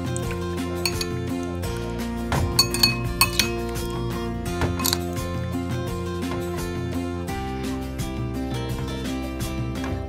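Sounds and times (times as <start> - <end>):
metal spoon clinking on bowl: 0.0 - 1.4, 2.5 - 4.0, 4.8 - 5.2
background music: 0.0 - 10.0.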